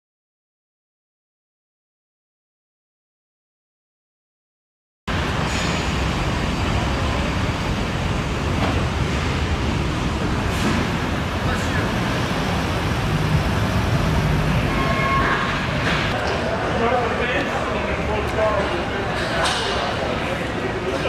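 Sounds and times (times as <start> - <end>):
low hall rumble: 5.1 - 21.0
indistinct crowd voices: 5.3 - 21.0.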